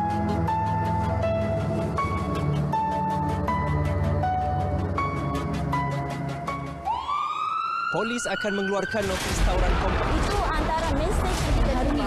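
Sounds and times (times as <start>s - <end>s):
background music: 0.0s - 12.0s
police car siren wailing: 6.8s - 9.2s.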